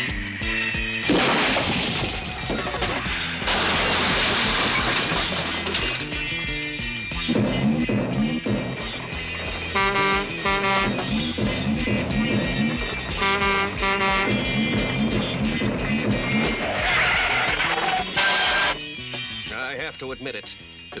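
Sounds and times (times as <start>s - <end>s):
cartoon background music: 0.0s - 21.0s
rushing crash sound effect: 1.0s - 6.1s
short pitched blasts: 9.7s - 11.3s, 13.1s - 14.8s.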